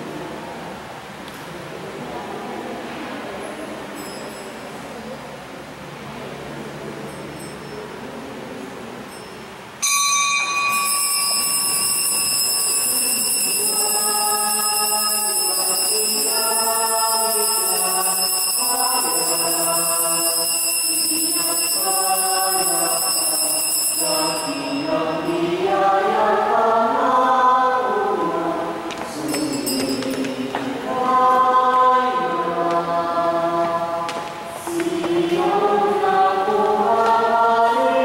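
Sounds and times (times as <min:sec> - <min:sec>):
choir singing a hymn: 0:12.7 - 0:38.0.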